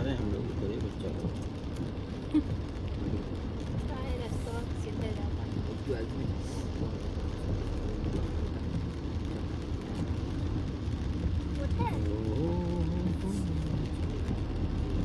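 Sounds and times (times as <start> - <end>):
car engine and tyre noise: 0.0 - 15.0.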